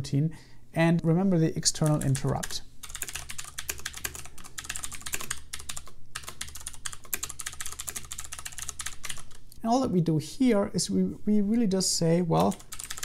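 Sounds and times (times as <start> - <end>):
fast typing on keyboard: 1.8 - 9.4, 12.4 - 13.0.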